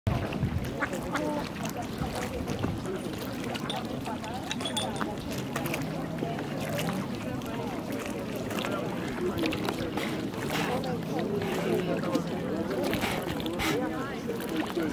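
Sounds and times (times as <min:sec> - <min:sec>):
lake water lapping: 0:00.1 - 0:14.9
people talking in background: 0:00.1 - 0:14.9.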